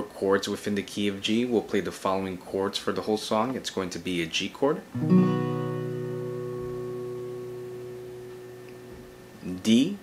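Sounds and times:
acoustic guitar chord ringing: 5.0 - 9.4.

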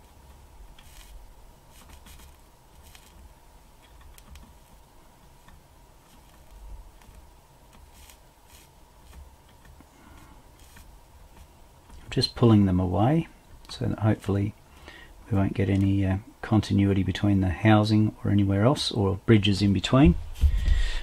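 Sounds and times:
soldering iron ticks and scrapes: 0.2 - 9.9, 10.6 - 12.2.

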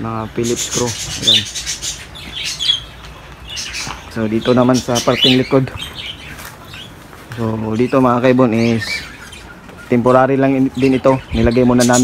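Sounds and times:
cage birds chirping: 0.0 - 12.0.

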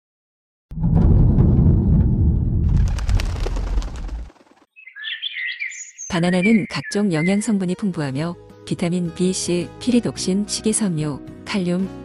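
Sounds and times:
deep rumble: 0.7 - 4.3
birds chirping: 3.7 - 7.9.

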